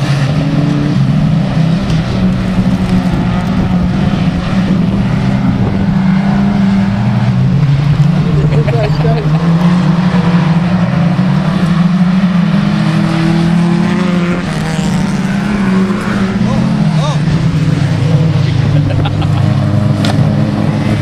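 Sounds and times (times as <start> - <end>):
racing car engines droning: 0.0 - 21.0.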